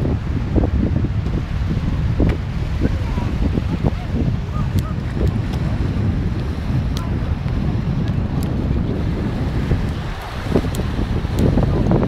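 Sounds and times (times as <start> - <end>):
sea waves breaking: 0.0 - 12.0
wind buffeting microphone: 0.0 - 12.0.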